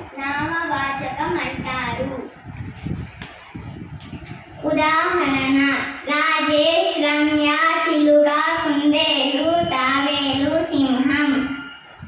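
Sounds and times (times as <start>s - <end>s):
girl singing into a microphone: 4.7s - 11.7s.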